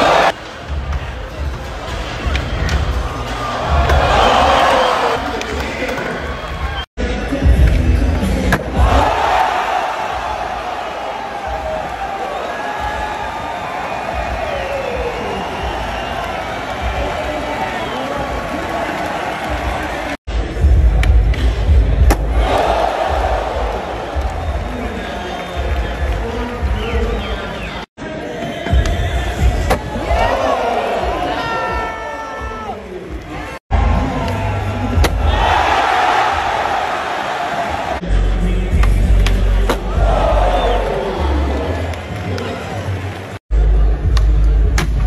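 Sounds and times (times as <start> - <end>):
crowd cheering: 0.0 - 7.6, 8.3 - 20.2, 21.4 - 43.4
music: 0.0 - 45.0.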